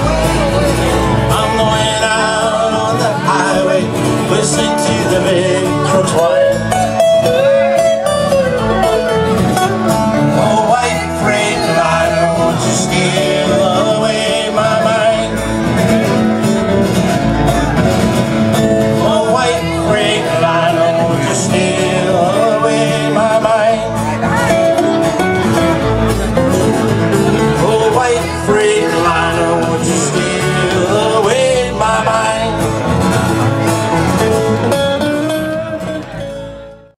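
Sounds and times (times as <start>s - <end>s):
acoustic guitar: 0.0s - 37.0s
electric bass: 0.0s - 37.0s.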